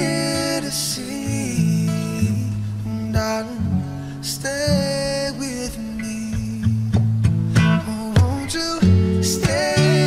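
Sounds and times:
plucked guitar: 0.0s - 10.0s
bass: 6.6s - 10.0s.

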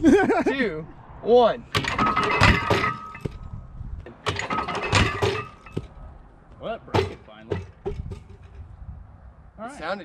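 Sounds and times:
catapult arm crashing: 1.7s - 3.4s, 4.1s - 6.0s
metal clanking: 1.7s - 6.0s, 6.9s - 8.7s.

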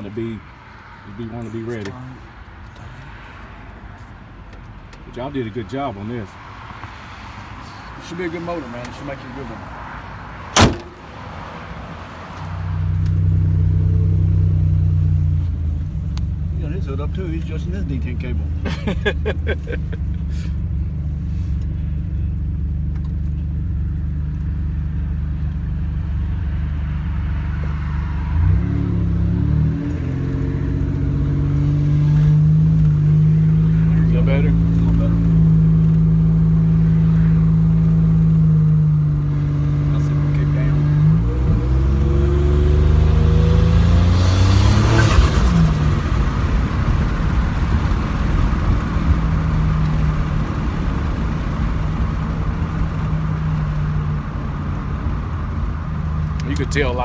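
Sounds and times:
car engine while driving: 0.0s - 57.0s.

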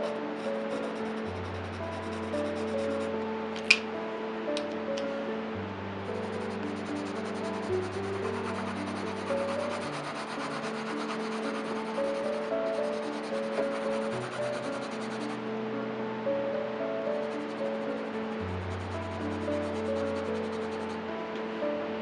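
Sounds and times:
pencil scratching on paper: 0.0s - 3.1s, 6.2s - 15.3s, 17.1s - 21.0s
soft background music: 0.0s - 22.0s.

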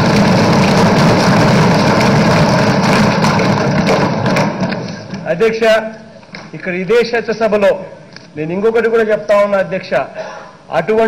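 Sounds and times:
people thumping desks: 0.0s - 5.3s.

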